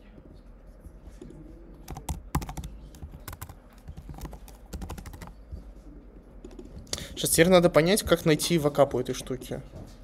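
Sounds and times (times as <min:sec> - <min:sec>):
keyboard typing: 0:01.8 - 0:05.4.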